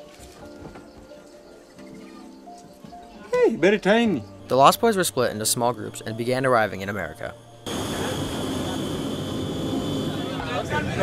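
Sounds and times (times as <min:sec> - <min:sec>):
soft background music: 0:00.0 - 0:08.7.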